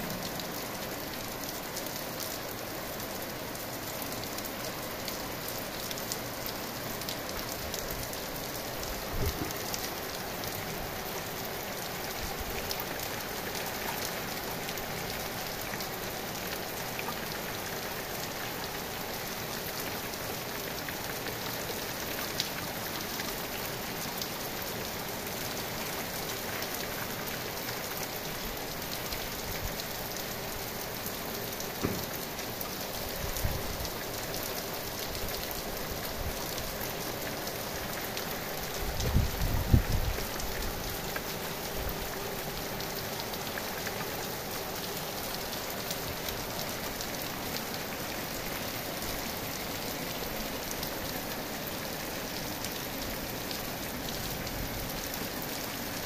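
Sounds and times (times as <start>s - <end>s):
heavy rain on leaves: 0.0s - 56.0s.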